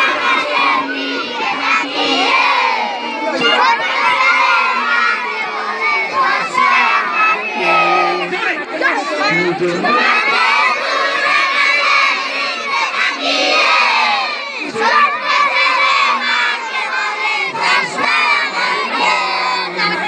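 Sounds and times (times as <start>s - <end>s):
children shouting: 0.0s - 20.0s.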